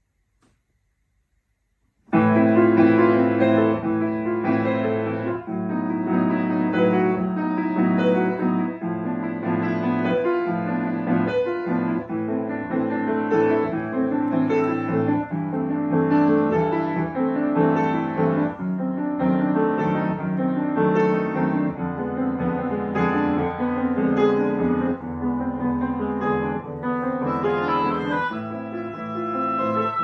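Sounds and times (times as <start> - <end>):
grand piano playing: 2.1 - 30.0.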